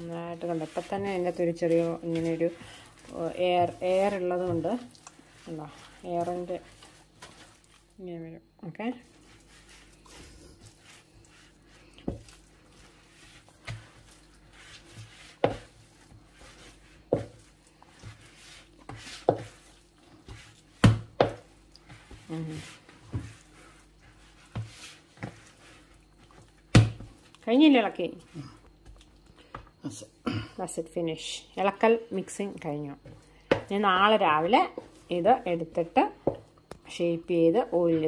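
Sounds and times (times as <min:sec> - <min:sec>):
squelching scrapes of batter: 0:00.0 - 0:08.1, 0:08.8 - 0:29.6.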